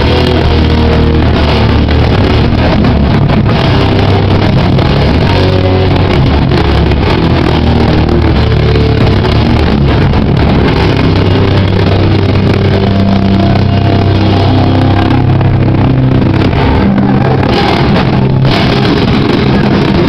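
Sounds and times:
punk band playing loud: 0:00.0 - 0:20.0.

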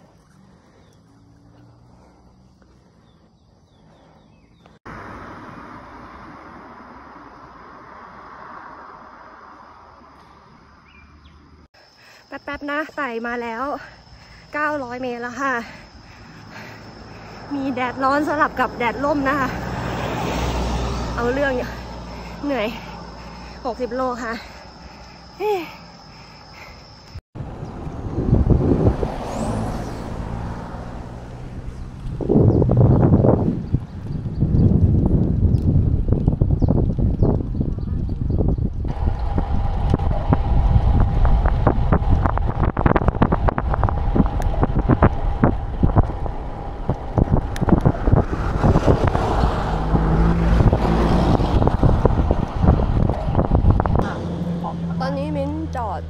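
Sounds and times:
wind buffeting microphone: 0:13.7 - 0:56.0.

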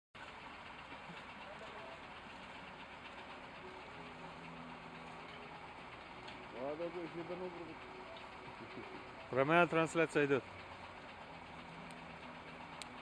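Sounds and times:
fire truck engine idling: 0:00.2 - 0:13.0.

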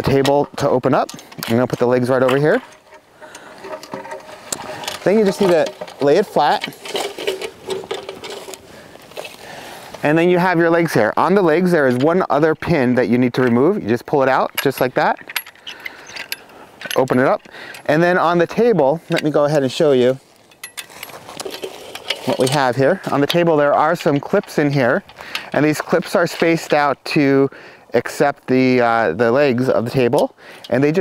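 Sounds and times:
metal table clicks and rattles: 0:01.1 - 0:08.6.

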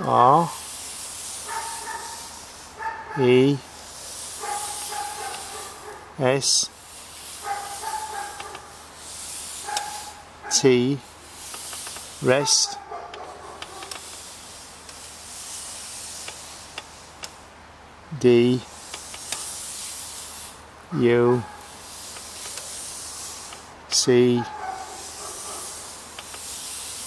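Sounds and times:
steady hiss: 0:00.0 - 0:27.0.

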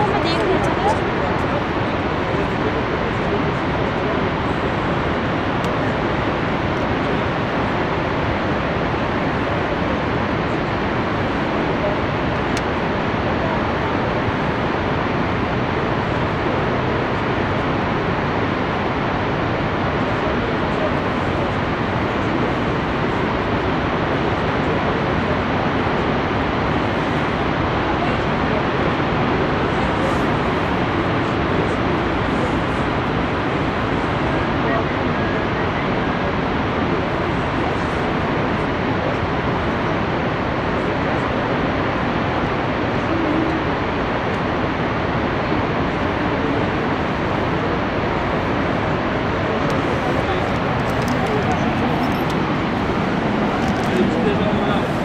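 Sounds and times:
waterfall rushing: 0:00.0 - 0:55.0.

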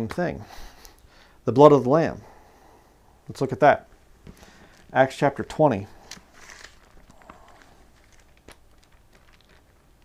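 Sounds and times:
thin pages rustling: 0:05.9 - 0:10.0.

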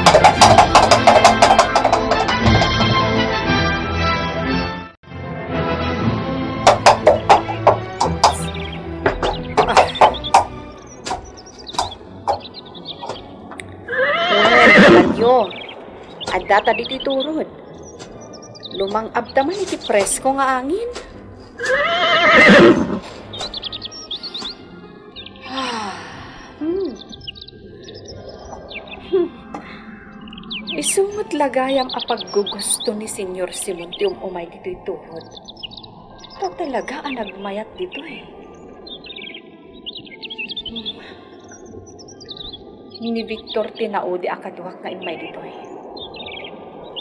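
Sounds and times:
small birds twittering: 0:00.0 - 0:02.8, 0:06.7 - 0:47.0
horse whinnying: 0:13.8 - 0:15.2, 0:21.6 - 0:23.1.

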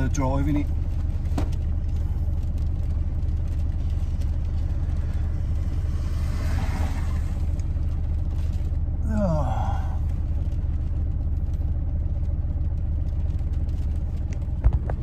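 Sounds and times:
car engine rumble inside cabin: 0:00.0 - 0:15.0.

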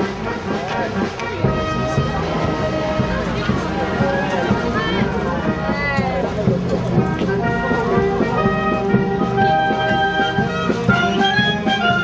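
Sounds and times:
brass band music: 0:00.0 - 0:12.0
steady drum beat: 0:00.0 - 0:12.0.

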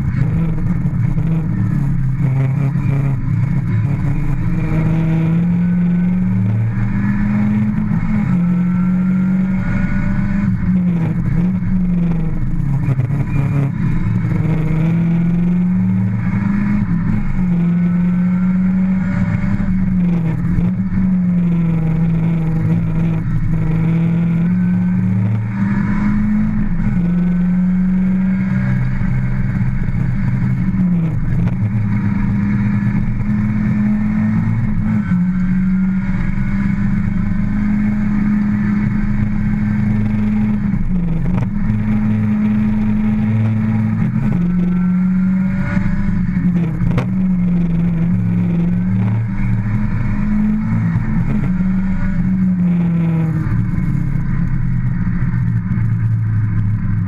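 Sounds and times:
car engine running hard: 0:00.0 - 0:57.0.

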